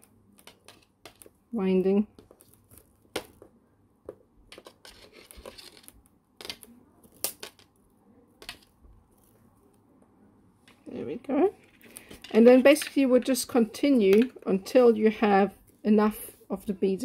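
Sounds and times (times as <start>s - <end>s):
wire scraping rustle: 4.6s - 6.0s.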